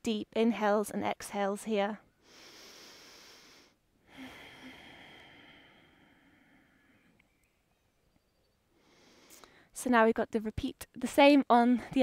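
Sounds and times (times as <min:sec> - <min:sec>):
woman breathing deeply: 0:02.2 - 0:07.2, 0:08.7 - 0:09.7.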